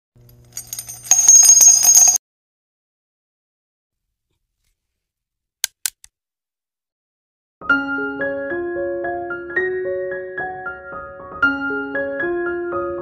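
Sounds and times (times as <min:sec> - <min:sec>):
jingling bell-like chime: 0:00.6 - 0:02.2.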